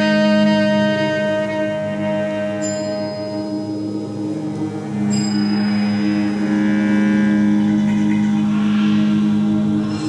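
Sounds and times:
loud low drone: 0:00.0 - 0:10.0.

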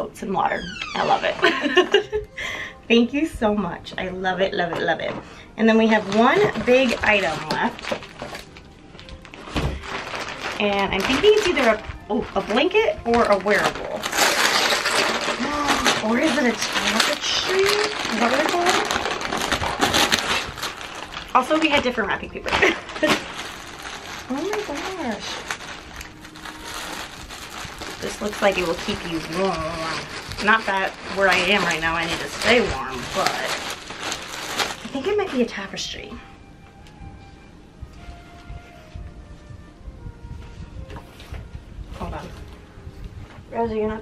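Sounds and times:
faint background music: 0:00.0 - 0:44.0
packaging rustling and crinkling: 0:01.0 - 0:02.2, 0:04.7 - 0:36.0
soft package thump: 0:09.5 - 0:09.8.

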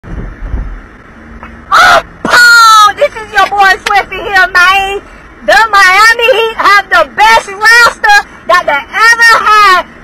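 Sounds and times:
car cabin rumble: 0:00.0 - 0:10.0
man yelling loudly: 0:01.7 - 0:03.2.

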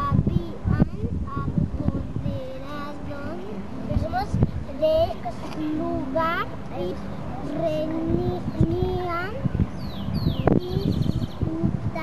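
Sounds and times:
young children's voices: 0:00.0 - 0:09.6, 0:10.2 - 0:12.0.

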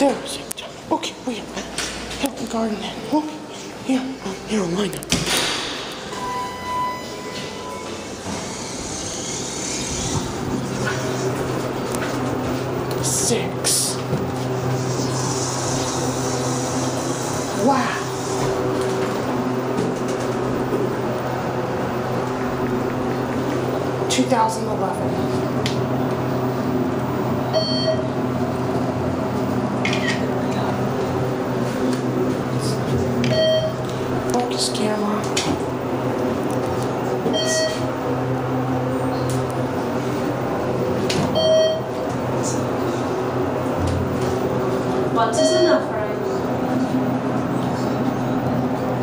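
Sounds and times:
low hydraulic hum: 0:02.9 - 0:49.0
elevator doors sliding: 0:05.0 - 0:49.0
elevator beep: 0:06.0 - 0:10.2, 0:26.3 - 0:28.3, 0:29.8 - 0:30.4, 0:33.2 - 0:33.9, 0:37.2 - 0:38.0, 0:41.3 - 0:42.1, 0:45.2 - 0:45.9
short electronic beep: 0:06.1 - 0:08.1, 0:33.3 - 0:33.8, 0:37.3 - 0:37.9.

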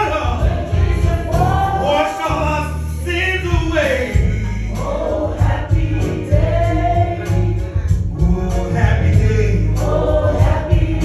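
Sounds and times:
electric keyboard chords: 0:00.0 - 0:11.0
man singing gospel song: 0:00.0 - 0:11.0.

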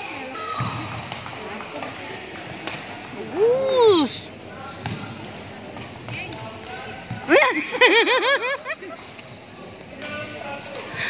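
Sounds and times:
rackets hitting shuttlecock: 0:00.6 - 0:03.0.

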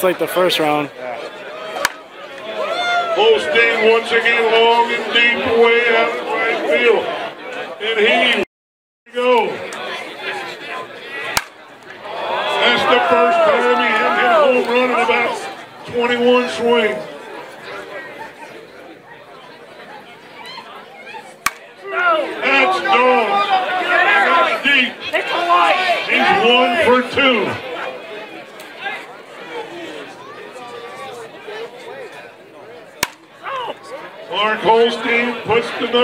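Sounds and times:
bat cracking against ball: 0:01.8 - 0:02.0, 0:11.3 - 0:12.0, 0:21.4 - 0:21.7, 0:33.0 - 0:33.3
quiet background chatter: 0:09.2 - 0:36.0.

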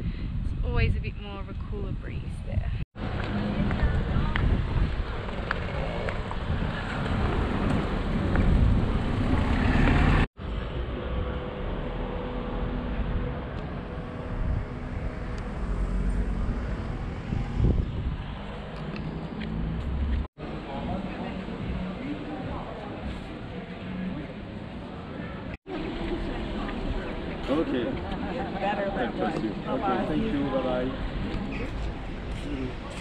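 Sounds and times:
wind buffeting microphone: 0:00.0 - 0:10.3, 0:13.0 - 0:19.0
road traffic going by: 0:03.0 - 0:33.0.

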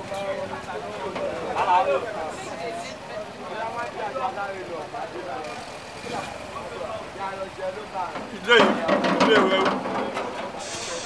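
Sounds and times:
background voices talking: 0:00.0 - 0:11.0
street noise: 0:00.0 - 0:11.0.

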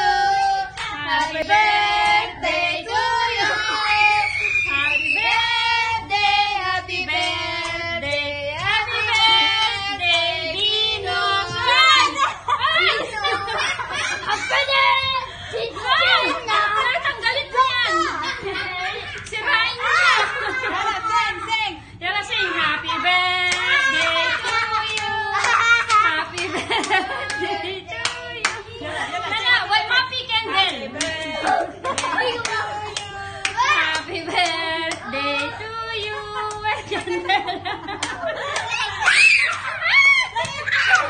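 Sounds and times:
high child-like voices singing: 0:00.0 - 0:21.3, 0:22.4 - 0:36.9.

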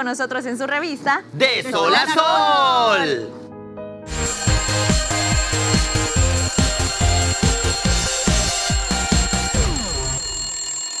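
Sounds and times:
cartoon alarm clock bell ringing: 0:04.1 - 0:11.0
jingle music: 0:04.1 - 0:11.0.

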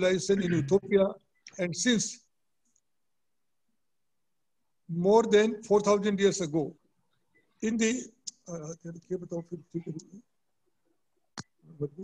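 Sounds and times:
man speaking: 0:00.0 - 0:02.3, 0:04.9 - 0:06.8, 0:07.6 - 0:10.3.

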